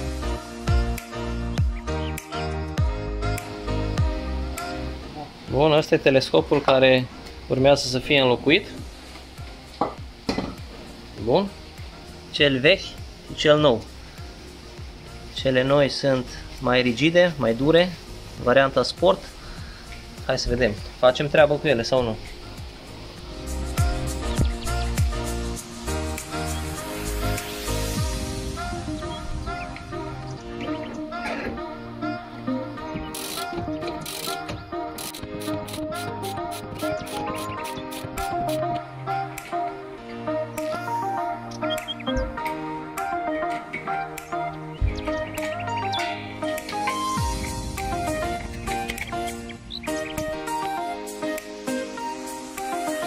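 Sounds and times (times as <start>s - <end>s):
faint music: 0.0s - 53.0s
man's voice: 5.1s - 8.8s, 15.4s - 19.4s, 20.2s - 22.2s
ratchet wrench clicking: 33.2s - 34.4s, 35.0s - 38.6s.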